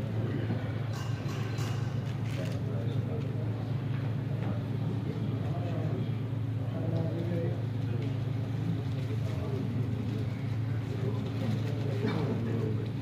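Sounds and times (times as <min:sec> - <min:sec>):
indistinct chatter: 0:00.0 - 0:13.0
low mechanical hum: 0:00.0 - 0:13.0.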